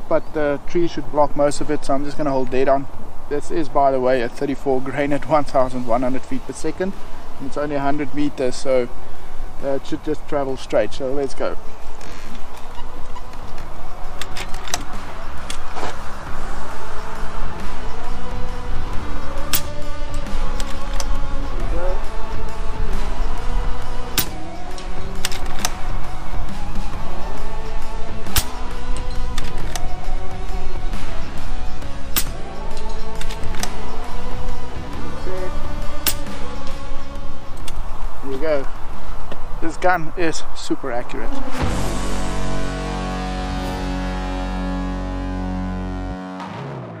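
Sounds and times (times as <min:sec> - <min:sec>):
background music: 0:00.0 - 0:47.0
air rifle cracks: 0:19.5 - 0:19.8, 0:24.2 - 0:24.4, 0:28.3 - 0:28.6, 0:32.1 - 0:32.4, 0:36.0 - 0:36.4
long held music chord: 0:41.3 - 0:47.0.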